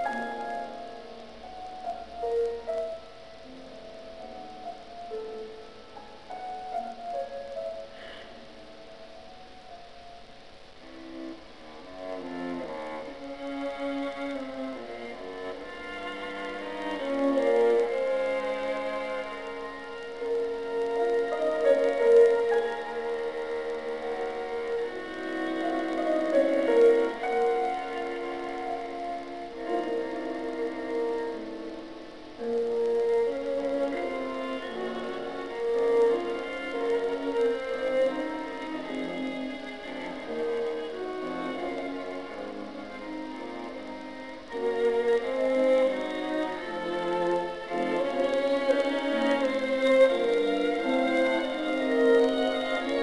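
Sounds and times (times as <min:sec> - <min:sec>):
bowed strings chamber music: 0:00.0 - 0:53.0.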